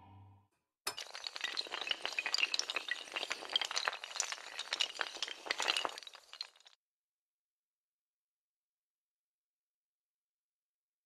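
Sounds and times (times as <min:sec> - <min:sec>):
dominoes toppling: 0:01.0 - 0:06.7.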